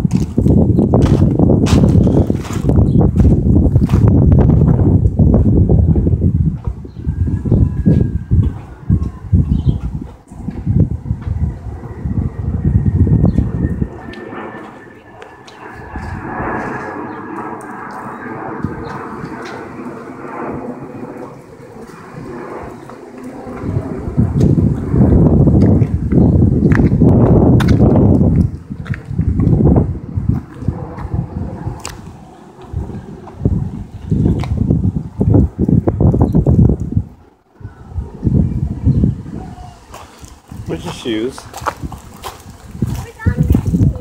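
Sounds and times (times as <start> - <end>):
heavy low thumps: 0.0 - 13.9
thunder rumbling: 0.0 - 44.0
wind buffeting microphone: 0.0 - 44.0.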